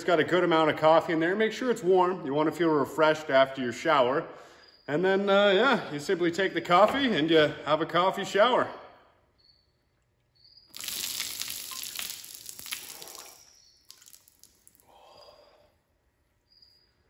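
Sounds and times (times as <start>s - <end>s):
coffee splashing onto floor: 10.7s - 14.9s.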